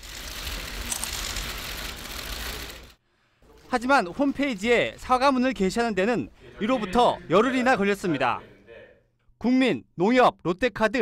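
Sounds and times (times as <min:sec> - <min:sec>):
camera shutters clicking rapidly: 0:00.2 - 0:02.9.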